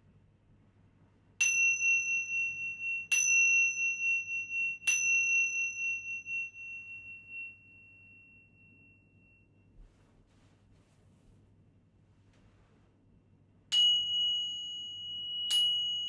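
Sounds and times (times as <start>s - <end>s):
small cymbals ringing: 1.4s - 9.7s, 13.7s - 16.0s.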